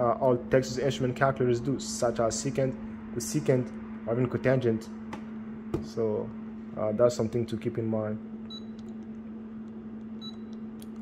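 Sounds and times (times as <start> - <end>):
steady low hum: 0.0 - 11.0
calculator high-pitched beep: 10.2 - 10.5.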